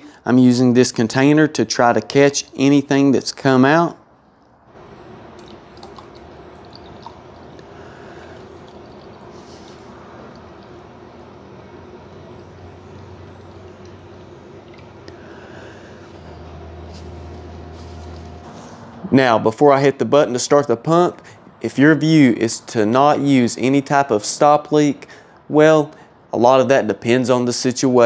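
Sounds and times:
low hum: 4.6s - 19.4s
thick liquid pouring into pot: 4.8s - 10.8s.

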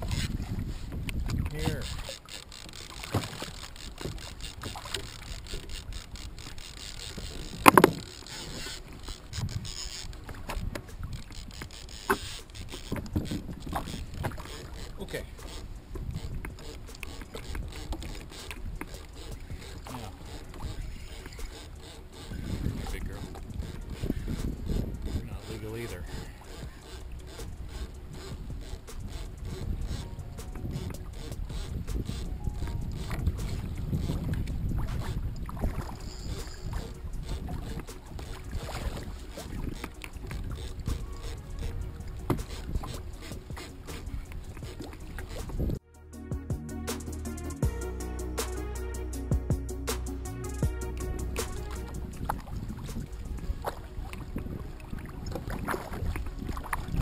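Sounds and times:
choppy water: 0.0s - 45.8s, 47.2s - 57.0s
fishing rods knocking: 0.0s - 45.8s, 49.4s - 57.0s
wind noise: 0.0s - 45.8s, 49.1s - 57.0s
music with steady beat: 45.4s - 53.8s.

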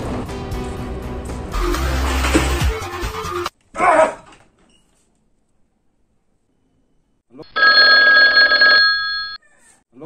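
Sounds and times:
mobile phone ringing: 7.5s - 9.4s.

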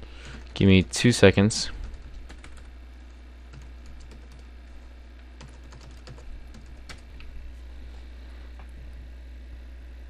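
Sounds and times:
steady low hum: 0.0s - 10.0s
computer keyboard typing: 1.9s - 2.7s, 3.5s - 4.5s, 5.4s - 7.1s.

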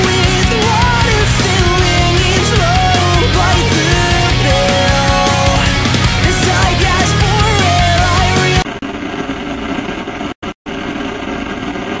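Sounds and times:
heavy rock with screamed vocal: 0.0s - 8.7s.

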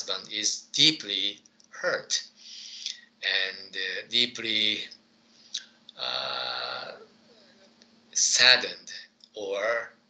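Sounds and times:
man's hesitation sound: 5.6s - 8.4s.

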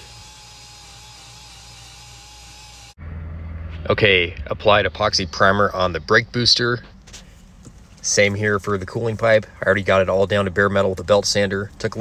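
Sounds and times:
belt sander on metal pipe: 0.0s - 3.0s
dust vacuum running: 0.0s - 3.0s
low hum: 0.0s - 11.8s.

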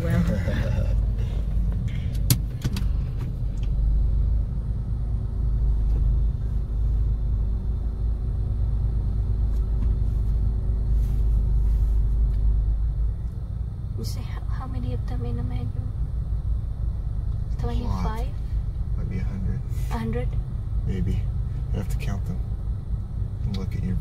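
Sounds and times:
car engine idling inside cabin: 0.0s - 24.0s
faint hum: 0.0s - 24.0s.

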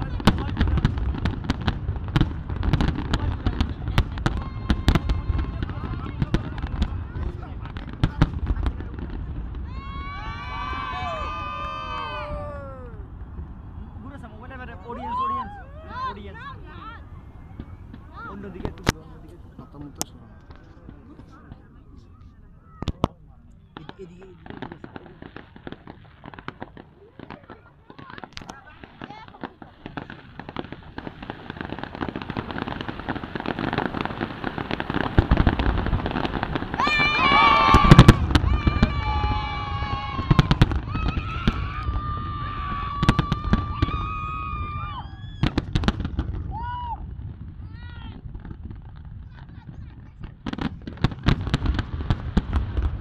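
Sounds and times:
fireworks bangs and crackles: 0.0s - 53.0s.

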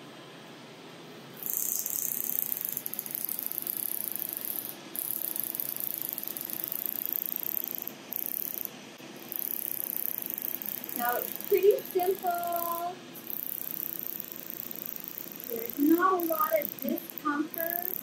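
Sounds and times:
laser handpiece buzzing hiss: 1.4s - 18.0s.

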